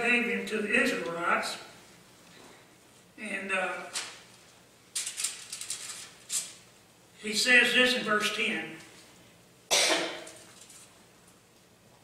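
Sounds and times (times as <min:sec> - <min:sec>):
person coughing: 0:09.7 - 0:10.4.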